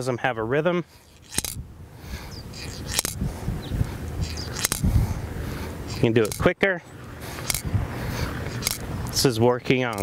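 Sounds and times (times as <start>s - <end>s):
sharp mechanism clicks: 1.1s - 1.6s, 2.6s - 3.2s, 4.2s - 4.9s, 5.9s - 6.5s, 7.4s - 7.7s, 8.5s - 8.9s.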